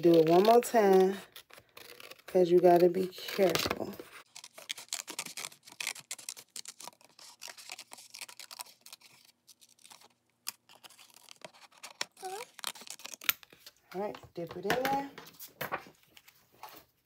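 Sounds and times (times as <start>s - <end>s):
scissors snipping paper: 0.0s - 13.7s
paper rustling: 0.0s - 17.0s.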